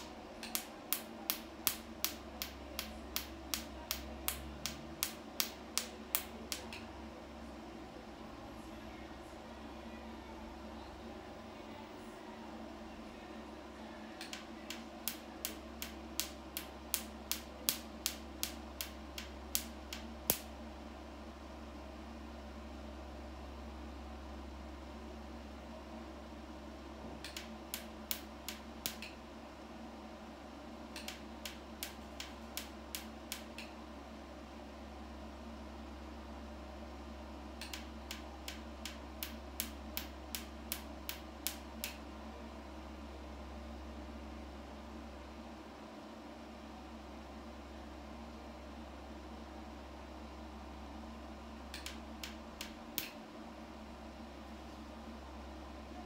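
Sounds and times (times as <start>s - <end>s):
laser handpiece clicking: 0.0s - 6.9s, 14.2s - 20.5s, 27.2s - 29.2s, 30.9s - 33.8s, 37.6s - 42.0s, 51.7s - 53.2s
cooling fans humming: 0.0s - 56.0s.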